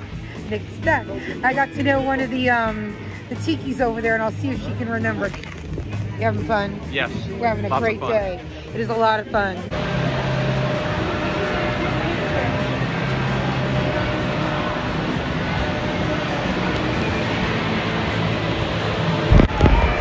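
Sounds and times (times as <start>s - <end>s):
outdoor noise rushing: 9.7s - 20.0s.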